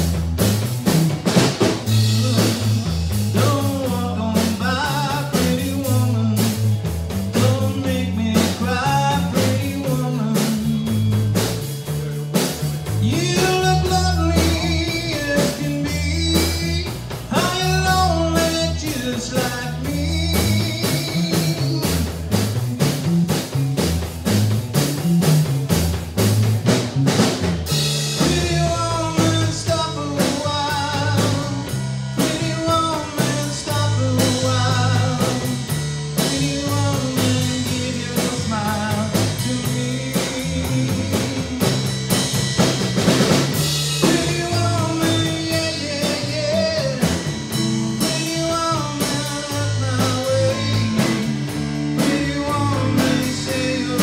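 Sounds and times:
blues-rock band playing: 0.0s - 54.0s.

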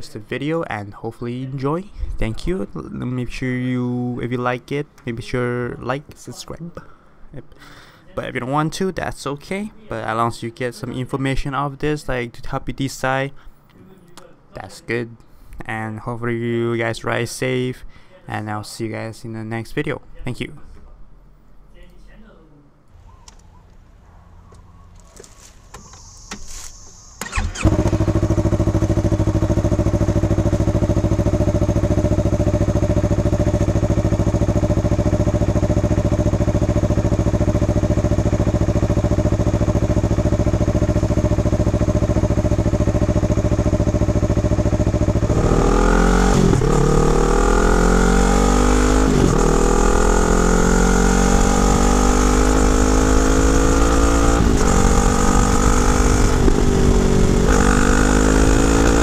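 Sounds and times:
motorcycle engine idling and revving: 24.4s - 59.0s.

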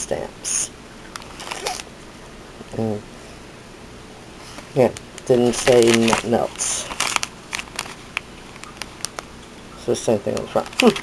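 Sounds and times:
plastic packaging crinkling: 1.1s - 1.9s, 4.8s - 9.3s, 10.2s - 11.0s.

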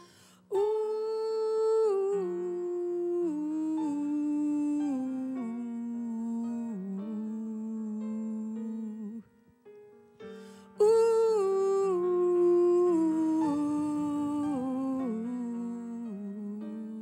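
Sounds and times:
woman humming a slow melody: 0.0s - 9.4s, 10.7s - 17.0s.

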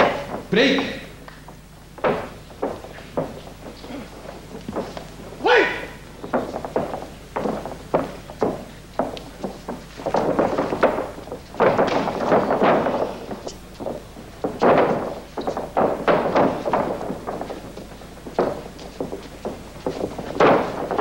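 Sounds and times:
bare feet thudding on canvas: 0.0s - 21.0s
strikes landing: 0.0s - 21.0s.

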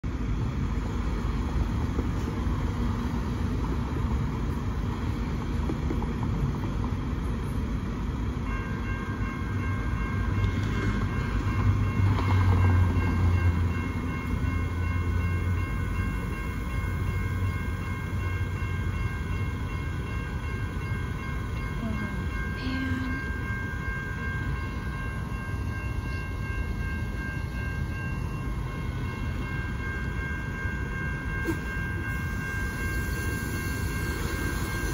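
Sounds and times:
street traffic: 0.0s - 34.9s
low rumble of passing traffic: 0.1s - 34.9s
railroad crossing bell ringing: 0.1s - 34.9s.

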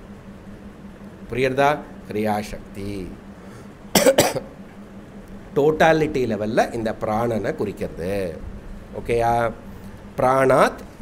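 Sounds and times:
man coughing: 3.9s - 4.6s.

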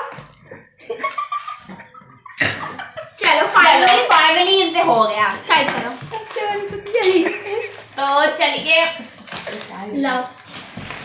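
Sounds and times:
hand claps: 3.2s - 4.2s.

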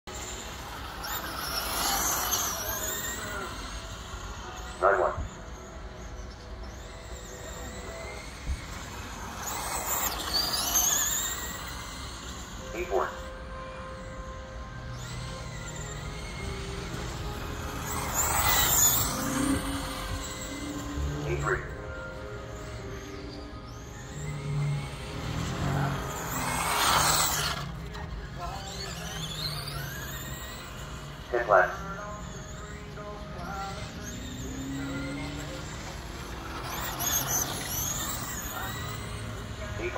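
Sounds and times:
toy car motors whining: 0.0s - 39.9s.

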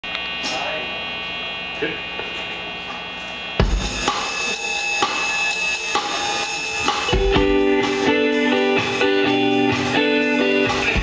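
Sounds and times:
ringing amp tones: 3.5s - 11.0s
cymbal hits: 3.6s - 8.1s
bass guitar: 3.6s - 11.0s
drum kit: 3.6s - 11.0s
electric guitar: 3.6s - 11.0s.

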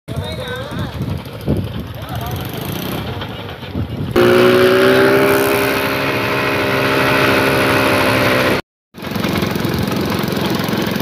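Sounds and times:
small engine running: 0.2s - 11.0s.

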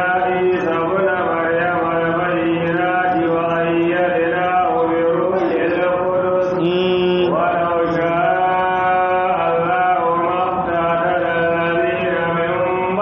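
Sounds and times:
man chanting melodic recitation: 0.0s - 13.0s.

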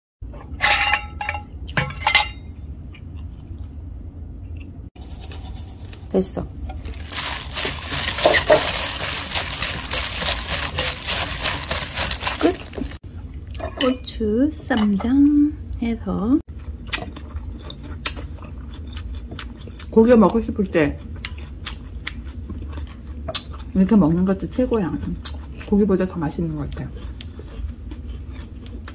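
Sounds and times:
low steady hum: 0.2s - 28.9s
scratching and rubbing: 6.8s - 13.0s
chewing wet mouth sounds: 16.5s - 20.0s, 20.9s - 25.8s, 26.4s - 28.9s.

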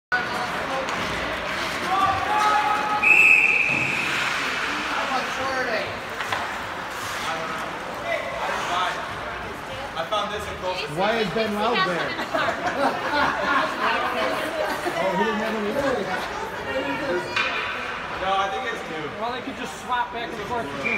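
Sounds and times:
spectators' voices: 0.1s - 20.9s
referee's whistle blast: 3.0s - 4.1s.

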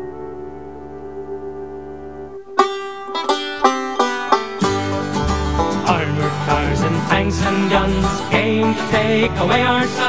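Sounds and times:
drone chord: 0.0s - 8.9s
bass and backing instruments: 0.0s - 10.0s
plucked string melody: 0.0s - 10.0s.

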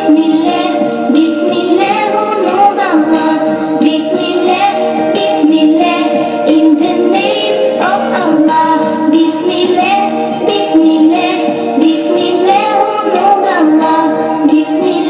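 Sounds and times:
child singing: 0.0s - 15.0s
musical backing track: 0.0s - 15.0s.

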